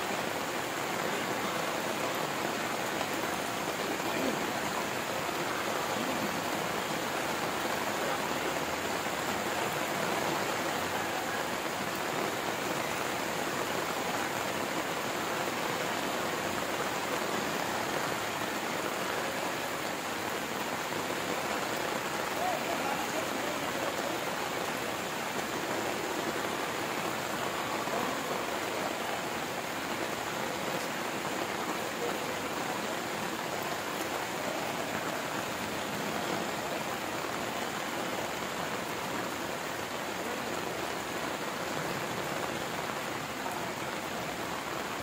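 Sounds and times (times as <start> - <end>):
heavy rain on metal roof: 0.0 - 45.0.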